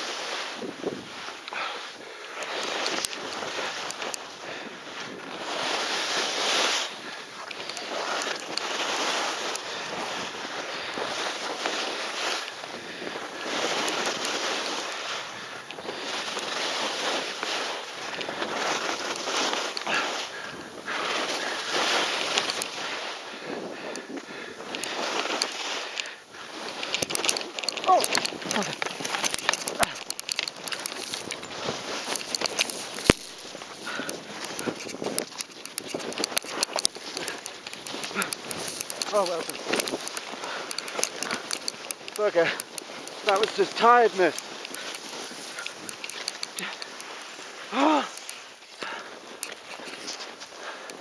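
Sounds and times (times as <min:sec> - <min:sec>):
skis scraping on snow: 0:00.0 - 0:51.0.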